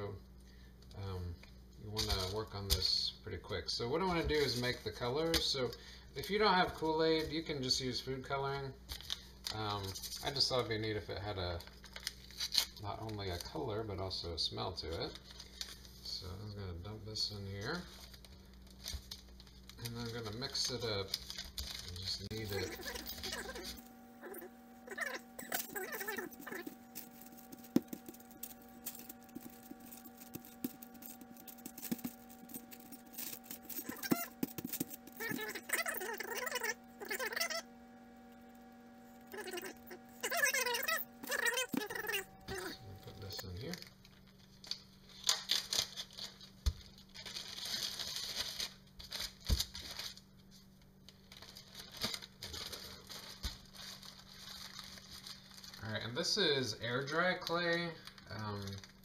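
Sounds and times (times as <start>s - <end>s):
steady low hum: 0.0s - 59.0s
paper rustling and crinkling: 8.9s - 10.7s, 11.5s - 13.6s, 14.8s - 16.0s, 17.6s - 37.2s, 39.4s - 59.0s.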